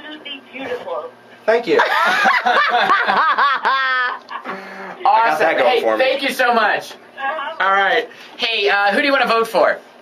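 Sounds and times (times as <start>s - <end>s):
person laughing hard: 1.8s - 4.6s.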